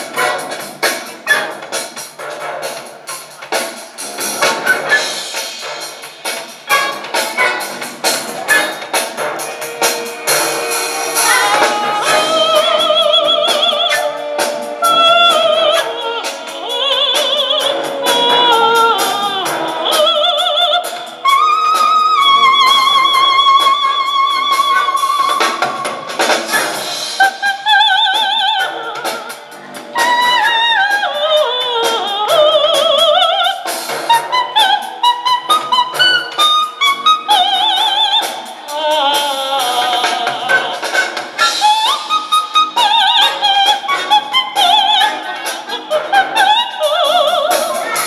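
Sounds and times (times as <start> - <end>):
symphony orchestra playing: 0.0 - 48.0
operatic soprano singing: 11.1 - 25.4, 30.1 - 33.6, 37.4 - 48.0.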